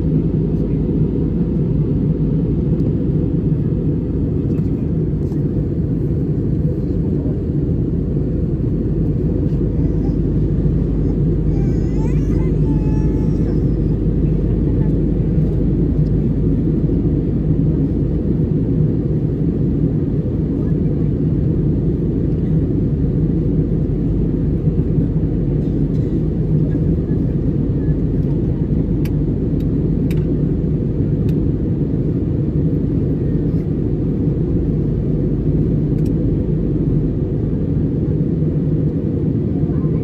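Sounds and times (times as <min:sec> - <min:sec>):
airliner cabin rumble: 0:00.0 - 0:40.0.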